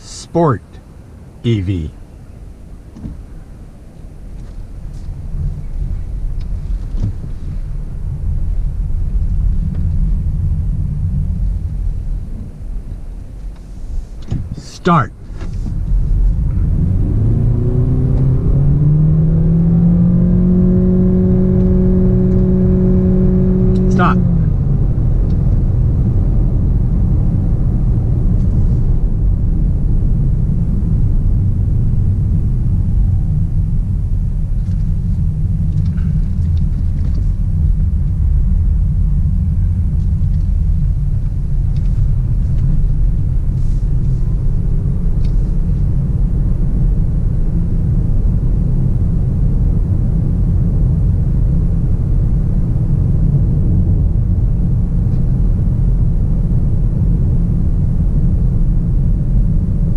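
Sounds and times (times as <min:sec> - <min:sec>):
car powertrain droning: 0:00.0 - 0:13.4, 0:14.3 - 0:59.9
road and tyre rumble: 0:00.0 - 0:59.9.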